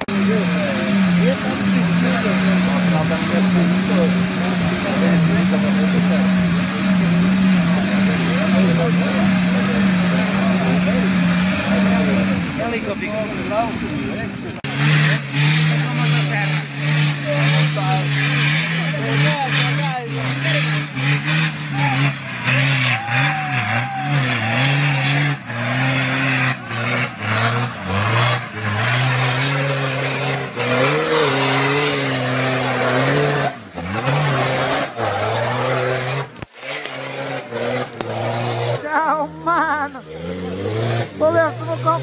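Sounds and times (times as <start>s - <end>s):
diesel engine revving hard: 0.0s - 42.0s.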